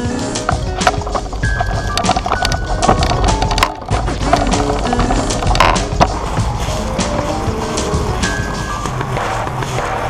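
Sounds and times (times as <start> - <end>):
background music: 0.0 - 10.0
small wheels rolling on concrete: 0.0 - 10.0
sharp clicks: 0.4 - 6.2.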